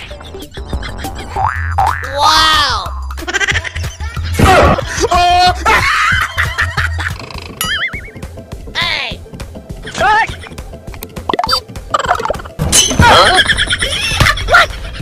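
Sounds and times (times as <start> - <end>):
comedic background music: 0.0 - 15.0.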